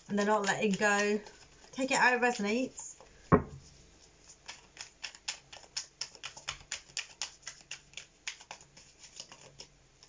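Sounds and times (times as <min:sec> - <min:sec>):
cards being shuffled: 0:03.6 - 0:09.7.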